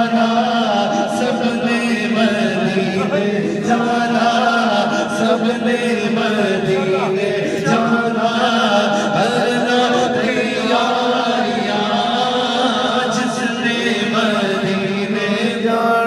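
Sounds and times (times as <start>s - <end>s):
man chanting into a microphone: 0.0s - 16.0s.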